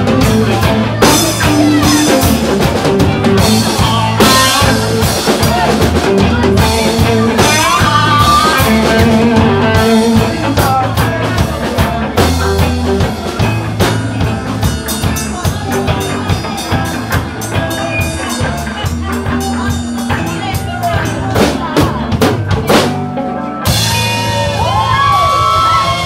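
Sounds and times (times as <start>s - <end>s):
bass guitar: 0.0s - 26.0s
drum kit: 0.0s - 26.0s
electric guitars: 0.0s - 26.0s.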